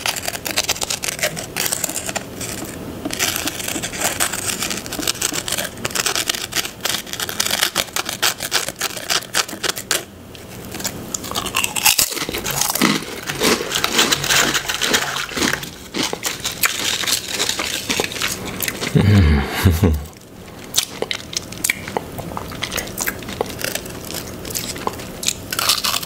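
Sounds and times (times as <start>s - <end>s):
crunchy chewing: 0.0s - 26.0s
potato chips crunching: 0.0s - 26.0s.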